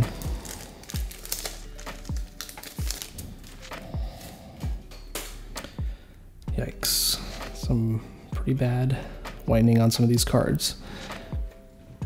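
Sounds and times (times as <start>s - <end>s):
background music with steady beat: 0.0s - 12.0s
foil pack crinkling: 0.1s - 4.3s.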